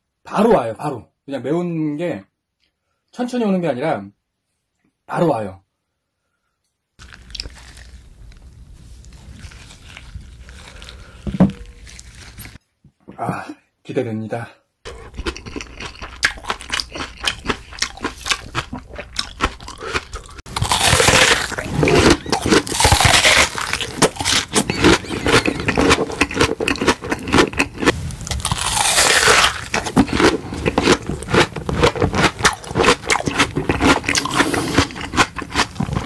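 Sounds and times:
crunching raw onion: 0:07.0 - 0:12.6, 0:14.9 - 0:36.0
wet cabbage squelching: 0:07.0 - 0:12.6, 0:16.0 - 0:36.0
low hum: 0:27.9 - 0:30.1.

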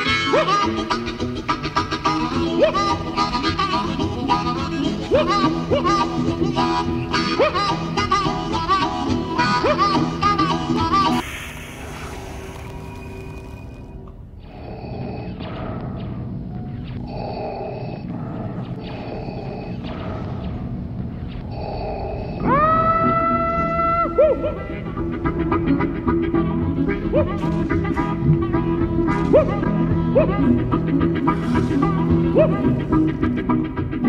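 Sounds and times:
blues harmonica: 0:00.0 - 0:11.2.

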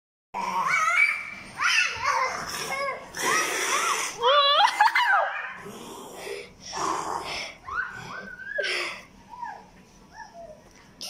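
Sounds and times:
child shrieking and squealing: 0:00.6 - 0:05.5.

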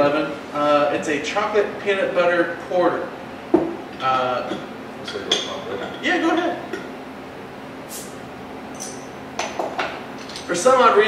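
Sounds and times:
bottle opener clicks and clinks: 0:08.7 - 0:09.6.

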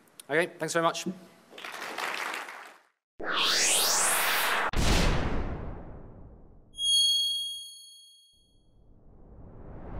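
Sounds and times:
bright bell-like chime: 0:06.8 - 0:08.6.

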